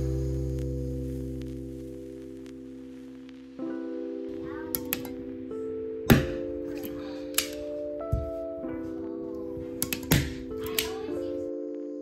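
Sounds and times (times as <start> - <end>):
background music with chords: 0.0 - 12.0.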